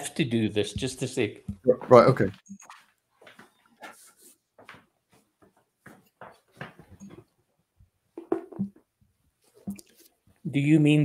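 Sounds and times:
faint knocks clicks and rustles: 4.6 - 7.4.

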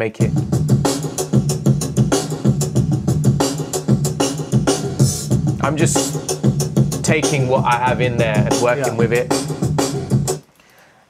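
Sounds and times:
hip-hop drum beat over speakers: 0.2 - 10.4.

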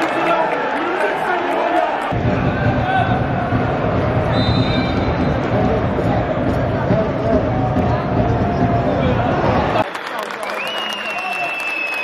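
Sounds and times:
fans clapping: 0.0 - 3.1, 5.4 - 12.0
long high whistle: 10.6 - 12.0.

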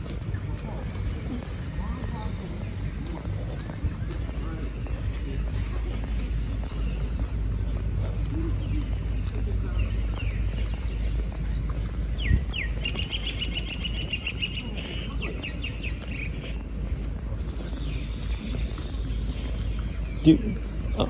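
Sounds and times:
bird singing a trill: 12.2 - 16.4, 17.6 - 21.0.

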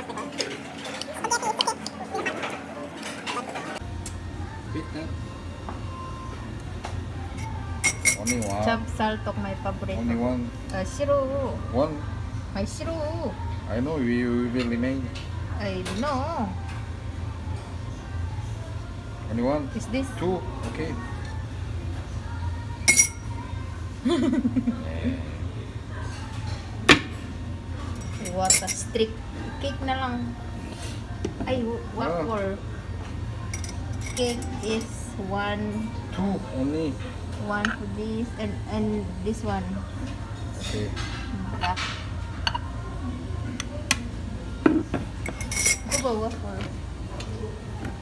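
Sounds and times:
tableware clinking on plates: 7.4 - 8.6, 22.9 - 23.2, 44.7 - 46.1
metal tongs clinking: 7.4 - 8.7, 22.9 - 23.2, 28.0 - 28.8, 33.5 - 34.9, 45.3 - 46.1.

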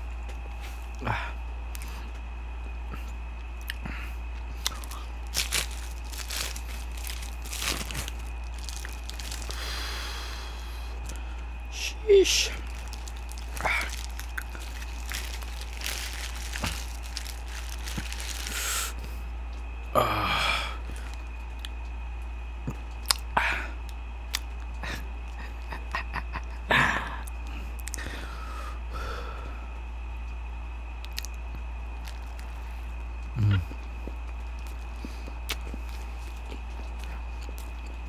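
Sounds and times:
steady low hum: 0.0 - 38.0
wet chewing sounds: 2.9 - 11.5, 12.5 - 19.1, 22.7 - 25.6, 27.3 - 28.1, 31.0 - 38.0
paper wrapper crinkling: 4.6 - 9.9, 12.4 - 19.0, 20.9 - 21.3, 32.0 - 32.6, 35.5 - 37.8
paper rustle: 4.8 - 9.6, 12.6 - 18.7.

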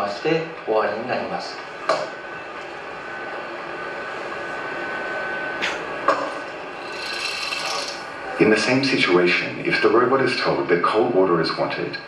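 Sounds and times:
steady background hum: 0.0 - 12.0
servo motors whirring: 6.8 - 8.0.

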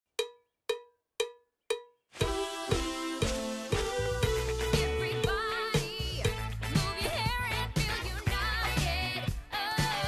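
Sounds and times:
cowbell strikes: 0.1 - 4.5.

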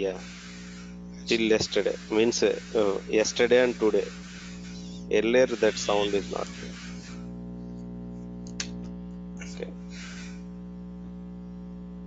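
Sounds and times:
electrical hum: 0.0 - 12.0
sharp click: 8.4 - 9.0
short hiss: 9.9 - 10.5.

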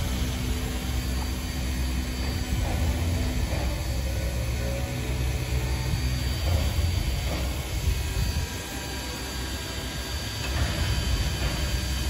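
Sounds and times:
locomotive engine rumbling: 0.0 - 12.0.

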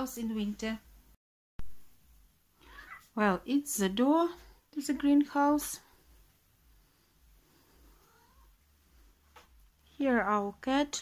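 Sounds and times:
cat meowing: 2.6 - 3.1, 8.0 - 8.5.

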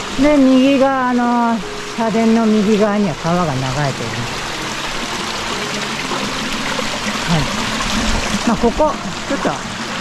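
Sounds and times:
stream water trickling: 0.0 - 10.0.

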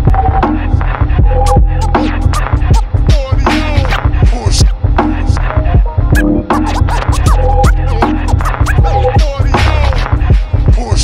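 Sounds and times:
hip hop beat with heavy bass: 0.0 - 11.0
turntable scratching: 0.6 - 5.5, 6.1 - 11.0.

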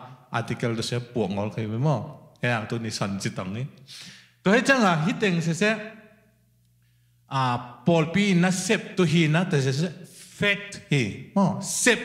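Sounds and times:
man talking into a microphone: 0.3 - 3.8, 4.5 - 5.8, 7.3 - 12.0.

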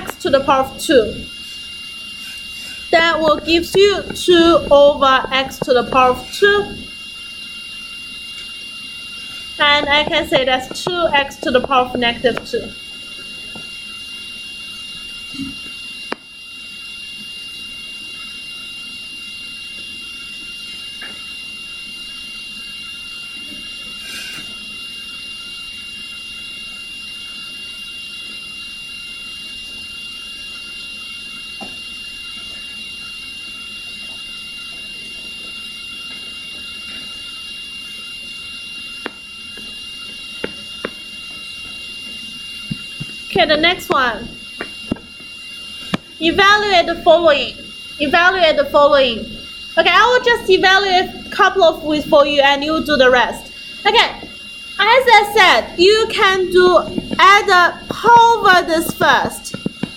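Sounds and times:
steady hiss: 0.0 - 46.8.

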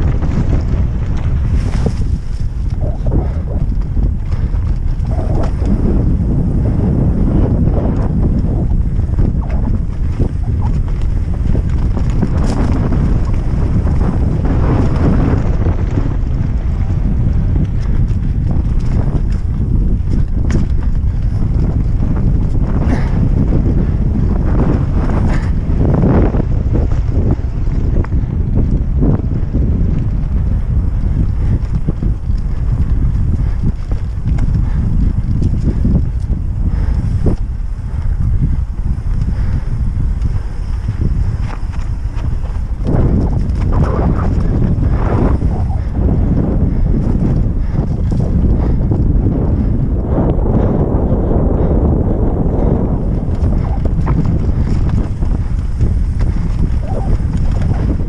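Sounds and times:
bike rattling over rocks: 0.0 - 49.1, 52.8 - 58.0
wind buffeting microphone: 0.0 - 58.0.

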